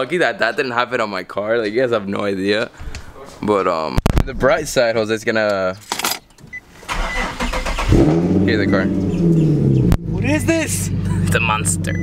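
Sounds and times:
engine starter cranking: 0:06.9 - 0:08.4
car engine catching: 0:06.9 - 0:12.0.

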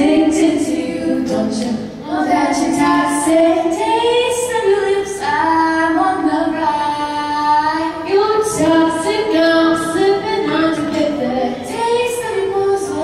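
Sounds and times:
two women singing: 0:00.0 - 0:13.0.

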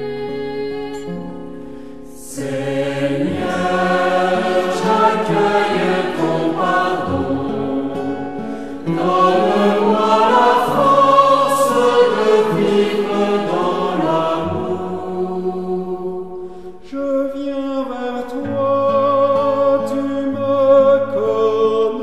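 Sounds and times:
choir singing a hymn: 0:00.0 - 0:16.8.

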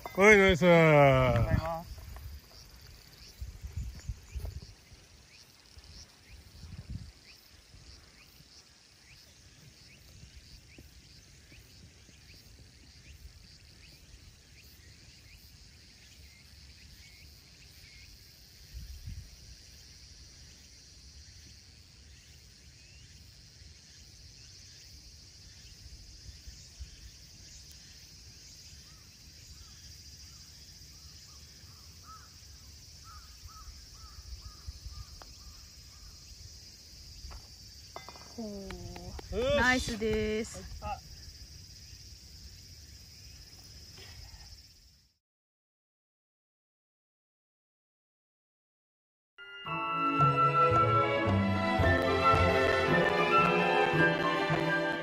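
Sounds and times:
high insect drone: 0:00.0 - 0:45.2
wind rumble on microphone: 0:03.2 - 0:05.1, 0:06.4 - 0:08.0, 0:18.6 - 0:19.6, 0:33.4 - 0:36.1
bird calls: 0:24.5 - 0:36.5.

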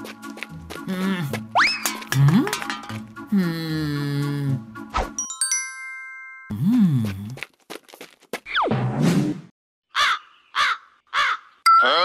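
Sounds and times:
crow cawing: 0:09.9 - 0:11.6.

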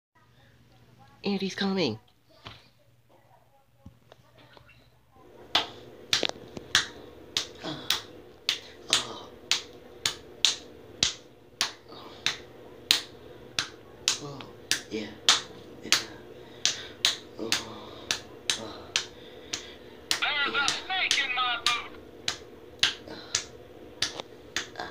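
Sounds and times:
hand slapping a stomach: 0:05.5 - 0:24.9
sharp snaps: 0:05.5 - 0:24.9.

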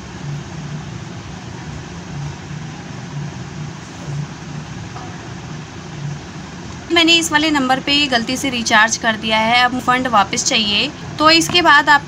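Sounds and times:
low pulsing throb: 0:00.0 - 0:08.6
mechanical hum with hiss: 0:00.0 - 0:12.0.

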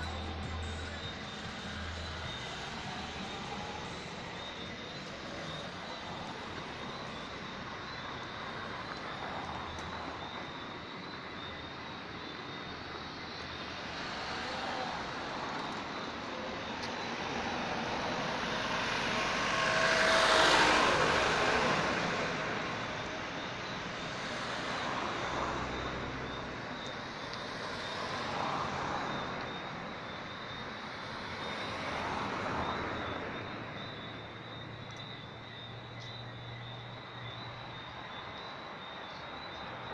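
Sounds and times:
cars passing on road: 0:00.0 - 0:39.9.

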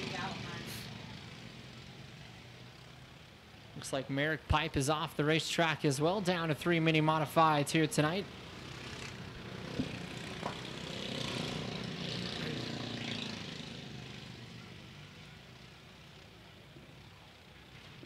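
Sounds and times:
race car engines: 0:00.0 - 0:18.0.

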